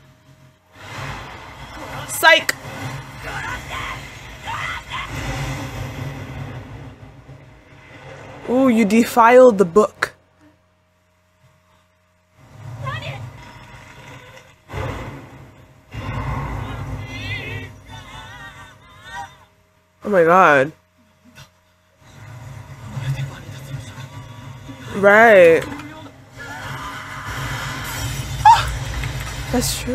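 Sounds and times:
noisy low rumble: 0.0s - 29.9s.

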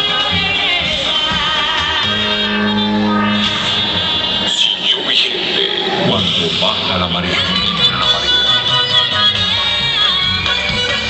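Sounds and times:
low held musical note: 1.8s - 4.8s.

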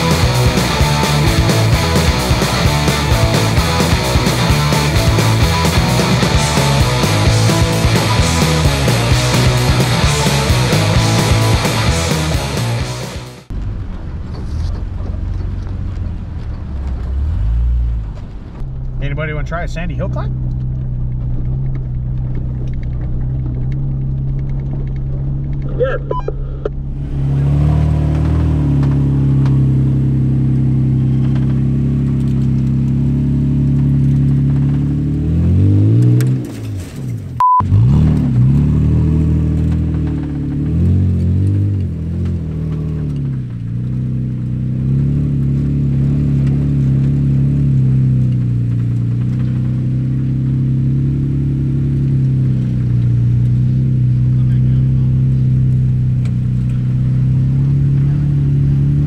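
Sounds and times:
truck engine under load: 13.4s - 59.0s.

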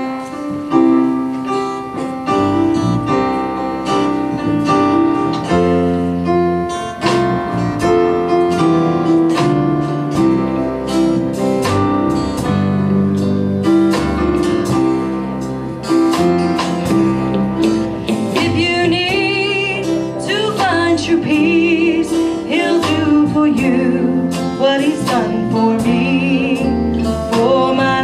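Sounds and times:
electric guitar: 0.0s - 28.0s
keyboard playing piano chords: 0.0s - 28.0s.

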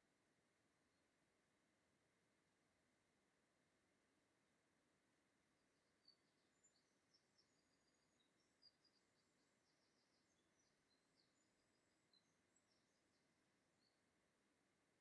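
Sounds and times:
small bird chirping: 5.6s - 14.3s.

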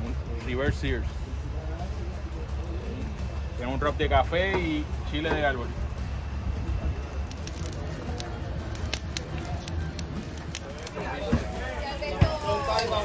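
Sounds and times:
people talking: 0.0s - 13.0s
steady low rumble: 0.0s - 13.0s.

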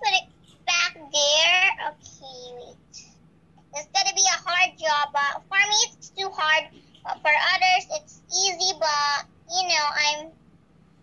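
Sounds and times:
child singing: 3.8s - 10.3s.

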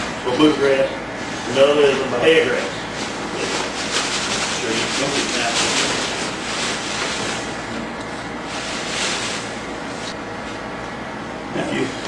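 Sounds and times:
paper sack crinkling: 2.5s - 7.7s.

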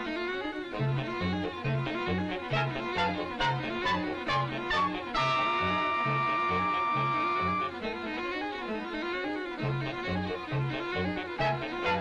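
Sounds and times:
pulsing bass line: 2.5s - 7.7s
orchestral held high note: 2.5s - 7.8s.

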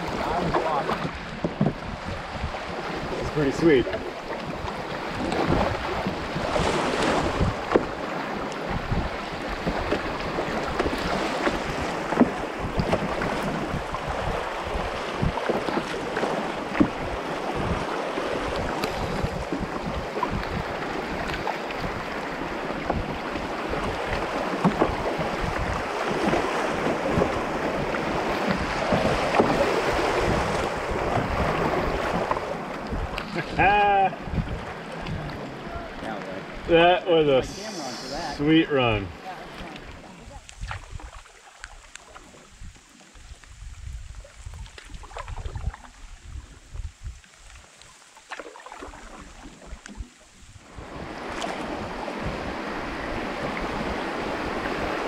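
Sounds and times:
wind gusting on microphone: 0.0s - 47.6s, 48.8s - 55.0s
river water rushing and splashing: 0.0s - 55.0s
person calling: 37.4s - 39.1s.

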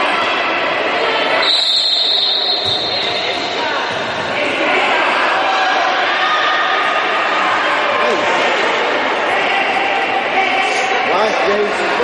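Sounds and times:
steady background noise: 0.0s - 12.0s
referee's whistle blast: 1.4s - 3.5s.

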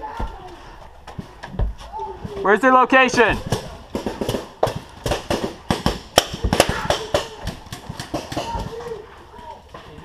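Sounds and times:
balls striking wood: 3.2s - 8.9s
paintball guns firing: 3.3s - 8.9s.

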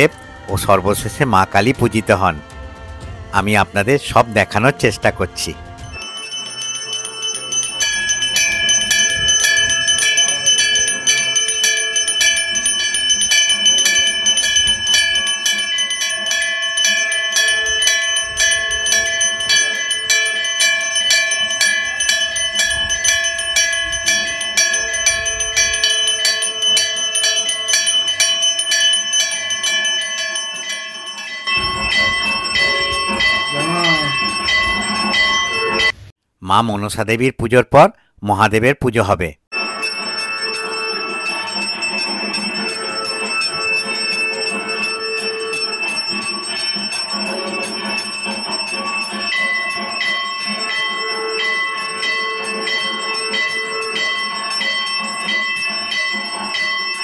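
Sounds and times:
temple bells ringing quickly: 3.4s - 36.1s, 39.5s - 57.0s
low wavering tone: 5.9s - 36.0s.

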